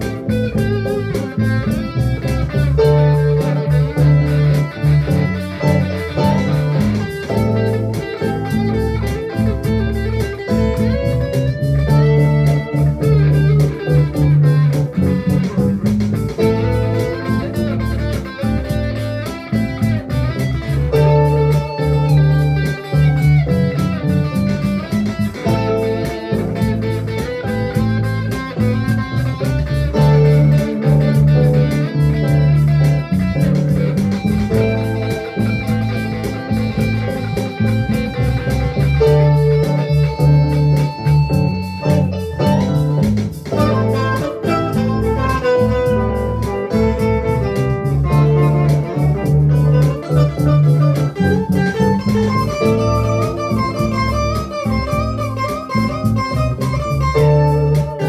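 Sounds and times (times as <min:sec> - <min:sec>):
electric guitar playing: 0:00.0 - 0:58.0.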